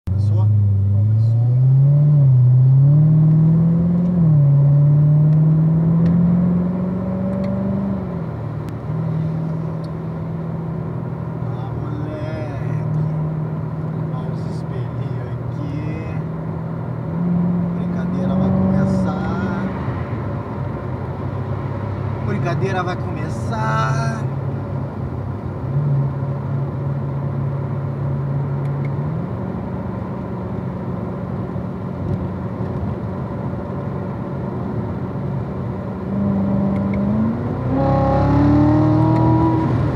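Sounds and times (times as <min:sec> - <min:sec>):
car engine accelerating and shifting: 0:00.1 - 0:39.9.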